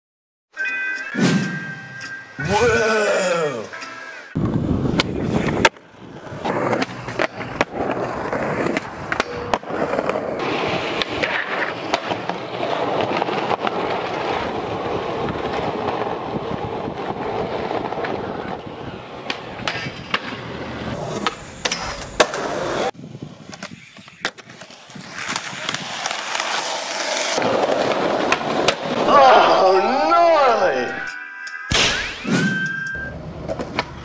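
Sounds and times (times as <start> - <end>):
people shouting: 2.4 - 3.8, 29.0 - 31.1
skateboard wheels rolling on pavement: 4.4 - 29.5, 33.0 - 34.0
skateboard pops and clacks: 4.9 - 5.8, 10.8 - 13.8, 19.2 - 20.4, 21.1 - 22.6, 27.3 - 29.0.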